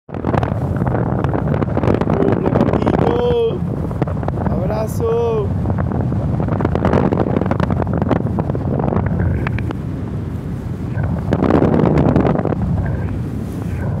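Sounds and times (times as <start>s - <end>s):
wind buffeting microphone: 0.1s - 14.0s.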